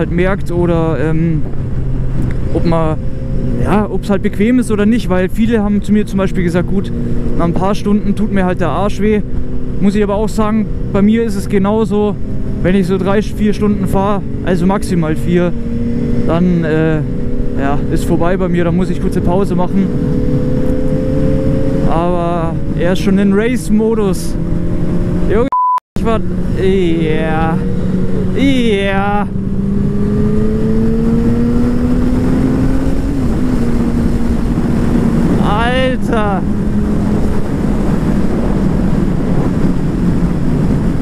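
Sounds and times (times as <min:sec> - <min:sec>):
wind noise on microphone: 0:00.0 - 0:07.4, 0:15.4 - 0:25.3, 0:26.1 - 0:41.0
motorcycle engine running: 0:05.5 - 0:23.2, 0:26.0 - 0:41.0.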